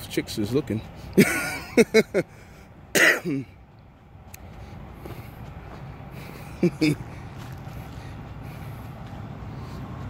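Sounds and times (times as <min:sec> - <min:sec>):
truck diesel engine rumbling: 0:00.0 - 0:10.0.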